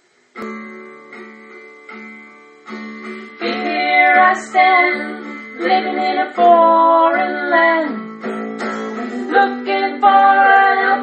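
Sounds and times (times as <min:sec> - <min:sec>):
acoustic guitar chords strummed: 0:00.0 - 0:11.0.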